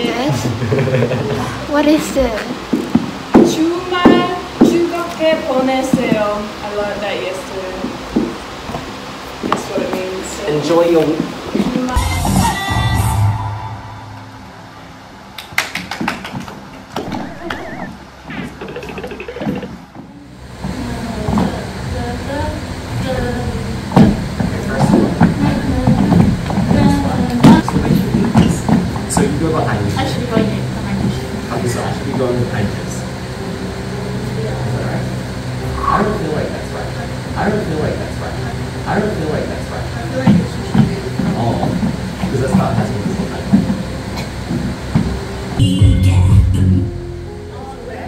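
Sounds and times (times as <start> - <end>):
ventilation hum: 0.0 - 48.0.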